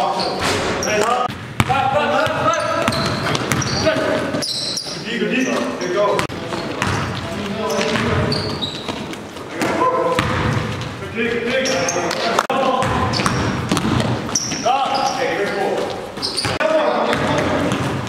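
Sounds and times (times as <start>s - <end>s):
sneaker squeaks: 0.0s - 1.3s, 2.3s - 18.0s
players' voices echoing: 0.0s - 18.0s
basketball bouncing on wooden floor: 1.3s - 4.4s, 6.2s - 11.0s, 12.8s - 14.6s.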